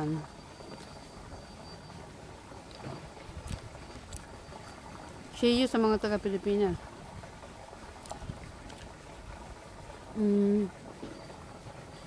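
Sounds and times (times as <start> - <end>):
faint outdoor background noise: 0.0 - 12.0
wind rumbling on microphone: 2.2 - 10.1.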